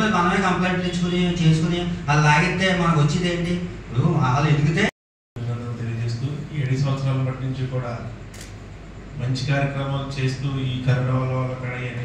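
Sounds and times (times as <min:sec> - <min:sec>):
man speaking into a microphone: 0:00.0 - 0:08.2, 0:09.2 - 0:12.0.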